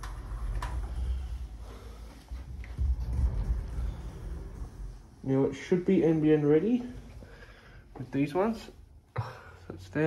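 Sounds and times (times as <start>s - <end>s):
sliding door rolling on track: 2.4s - 5.9s.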